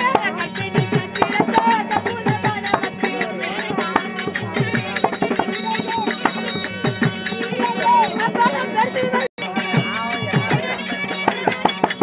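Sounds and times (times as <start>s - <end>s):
hand drum strokes: 0.0s - 12.0s.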